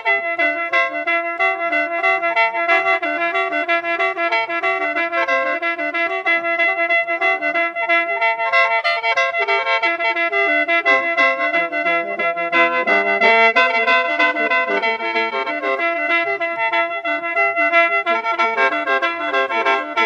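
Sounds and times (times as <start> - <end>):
mouth organ melody with drone: 9.4 - 20.0.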